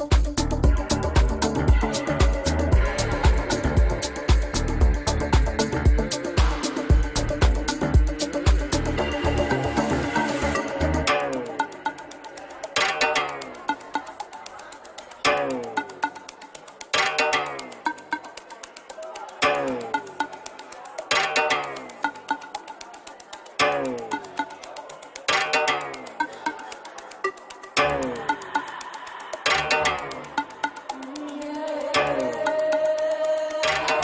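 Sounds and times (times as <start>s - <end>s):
electronic beat: 0.0s - 34.0s.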